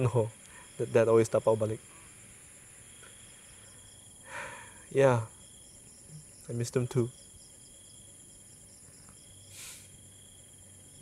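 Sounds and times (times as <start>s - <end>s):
soft breathy hiss: 0.0s - 6.6s, 8.6s - 11.0s
night insects chirring: 0.0s - 11.0s.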